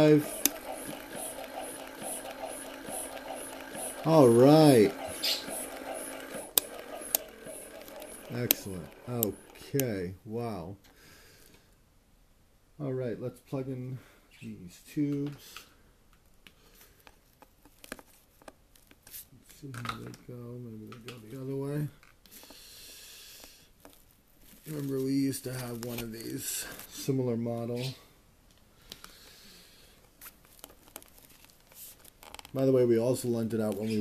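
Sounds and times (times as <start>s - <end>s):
breast pump motor pulsing: 0.0s - 9.8s.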